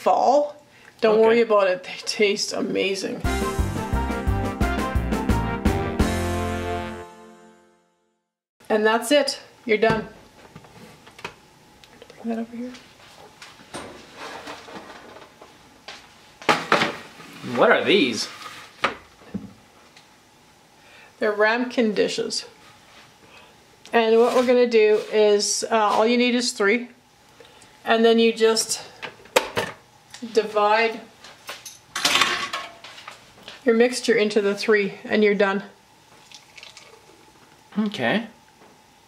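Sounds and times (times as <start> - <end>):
cloth wiping a counter: 24.0 - 26.1
steel bowl clinking: 36.2 - 37.2.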